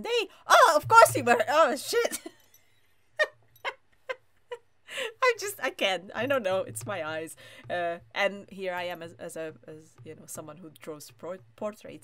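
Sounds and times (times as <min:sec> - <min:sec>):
woman laughing: 0:00.9 - 0:02.4, 0:03.2 - 0:05.3.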